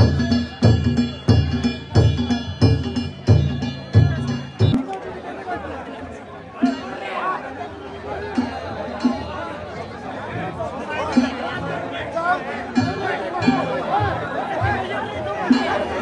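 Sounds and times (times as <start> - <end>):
drum and gongs striking: 0.0 - 5.2, 6.6 - 7.1, 8.3 - 9.7, 10.3 - 16.0
crowd chatter: 0.0 - 16.0.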